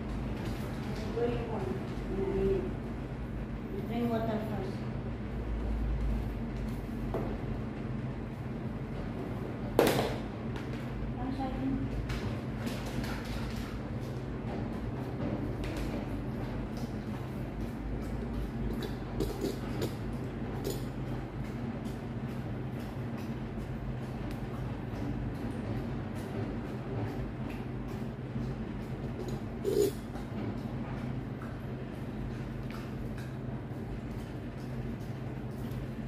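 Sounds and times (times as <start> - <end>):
low mechanical hum: 0.0 - 36.0.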